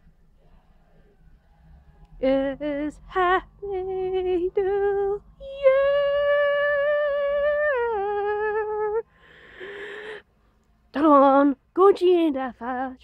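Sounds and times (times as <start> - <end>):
breathy exhale: 9.1 - 10.6.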